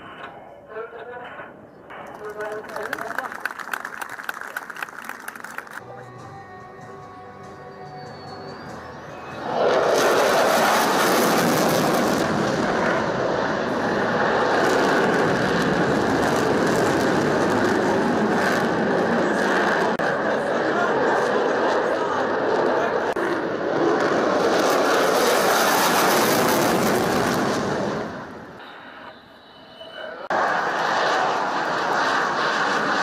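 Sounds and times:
fighter jet engine roaring: 0:08.0 - 0:29.0, 0:29.9 - 0:33.0.

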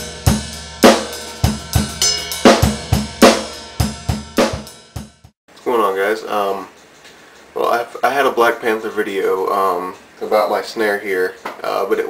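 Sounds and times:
drum kit playing a groove: 0:00.0 - 0:05.4.

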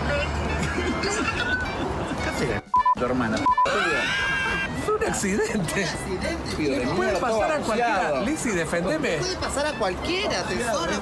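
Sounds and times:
censor bleeps: 0:02.7 - 0:03.8.

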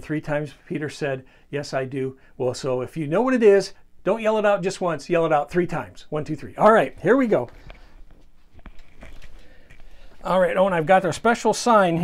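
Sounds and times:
faint movement noises: 0:05.1 - 0:12.0.

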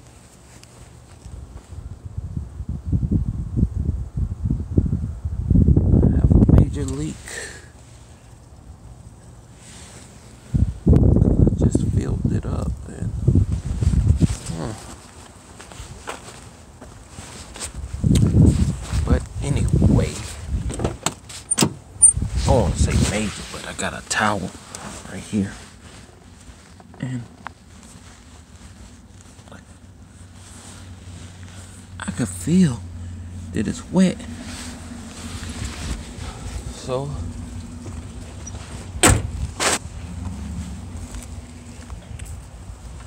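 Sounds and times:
wind buffeting microphone: 0:01.7 - 0:07.1, 0:10.4 - 0:14.8, 0:17.7 - 0:21.0, 0:21.8 - 0:23.3, 0:34.2 - 0:43.0
car door latch clicking: 0:20.7 - 0:21.8, 0:39.0 - 0:39.4.

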